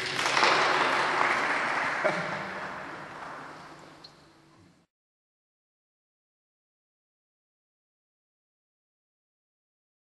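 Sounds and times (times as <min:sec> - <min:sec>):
audience applauding: 0:00.0 - 0:04.0.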